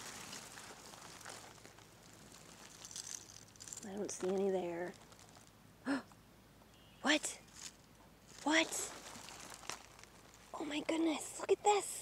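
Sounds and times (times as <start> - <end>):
spruce boughs rustling: 0.0 - 5.6, 7.5 - 11.2
twigs crackling: 0.0 - 5.6, 7.5 - 10.6.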